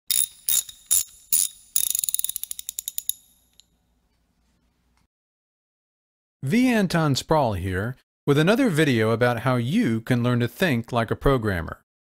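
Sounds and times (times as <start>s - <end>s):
curtain rope ratchet clicking: 0.1s - 3.6s.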